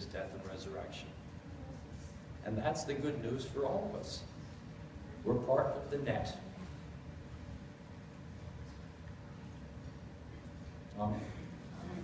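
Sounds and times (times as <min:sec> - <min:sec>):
low rumble with faint hiss: 0:00.0 - 0:12.0.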